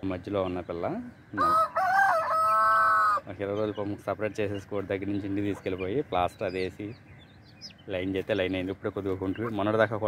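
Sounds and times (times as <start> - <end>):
rooster crowing: 1.4 - 3.3.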